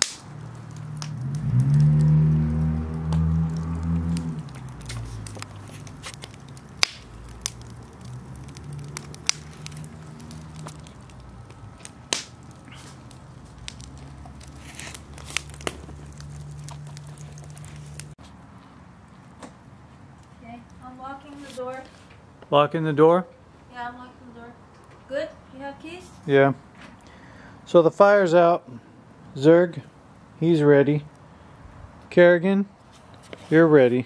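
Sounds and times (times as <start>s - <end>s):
wood fire crackling and popping: 0.0s - 23.1s.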